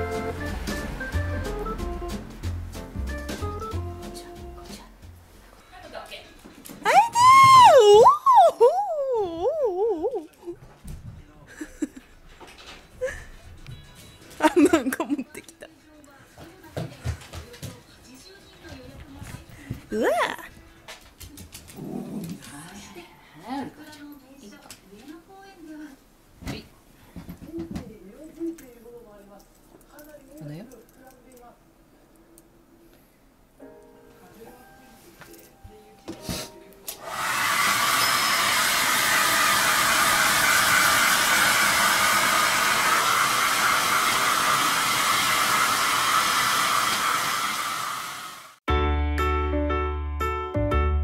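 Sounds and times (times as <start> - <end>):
dog grumbling: 21.7 - 22.9
hair dryer blowing: 36.9 - 48.6.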